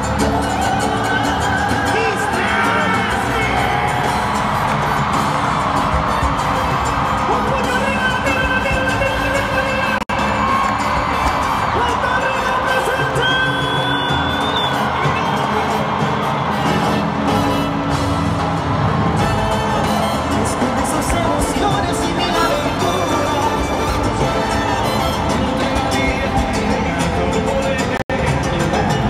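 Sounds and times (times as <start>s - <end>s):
crowd cheering and shouting: 0.0s - 29.0s
live salsa band playing: 0.0s - 29.0s.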